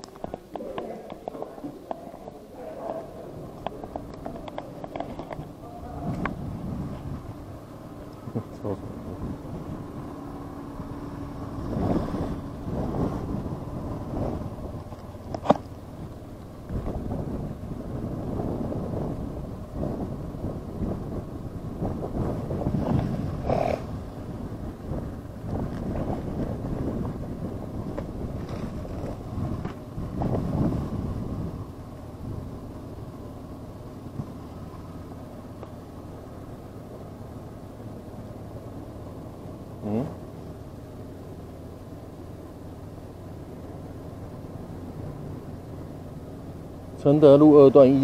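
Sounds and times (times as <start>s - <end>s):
vehicle road rumble: 0.0s - 48.0s.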